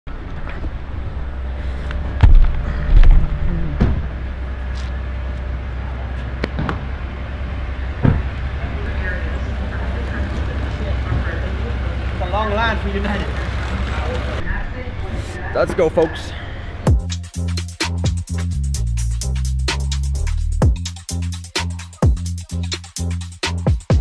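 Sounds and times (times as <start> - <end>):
vehicle idling rumble: 0.1 - 24.0.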